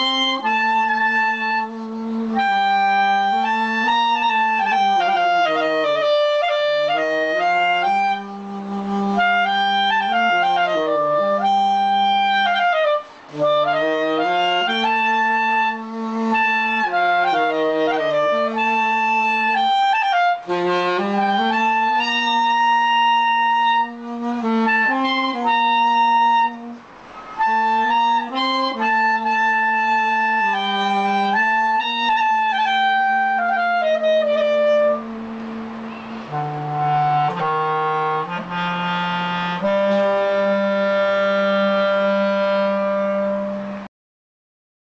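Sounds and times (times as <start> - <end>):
clarinet melody: 0.0 - 43.9
saxophone melody: 0.0 - 43.9.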